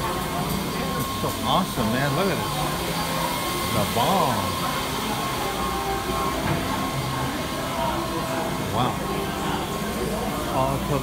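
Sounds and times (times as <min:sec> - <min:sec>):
murmur of voices: 0:00.0 - 0:11.0
ventilation and machinery hum: 0:00.0 - 0:11.0.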